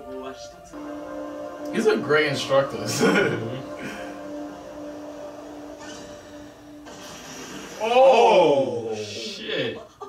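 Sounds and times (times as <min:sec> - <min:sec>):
sustained low musical tone: 0:00.0 - 0:09.3
soft hissing rush: 0:00.8 - 0:09.5.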